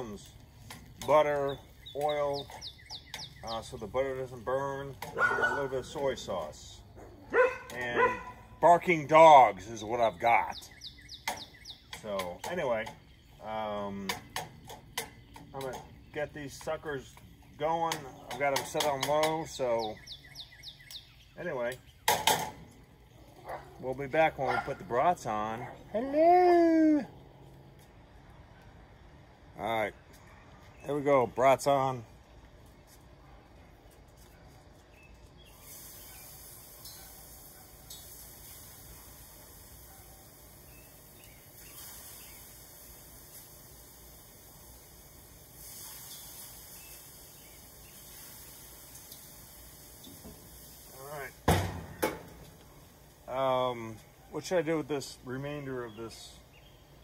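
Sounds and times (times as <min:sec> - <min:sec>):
sausages sizzling on a grill: 0:00.0 - 0:27.8, 0:34.7 - 0:57.0.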